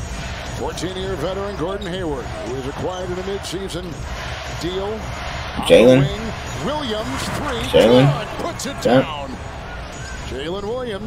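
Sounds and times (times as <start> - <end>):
arena crowd noise: 0.0 - 11.0
commentator talking: 5.6 - 9.4.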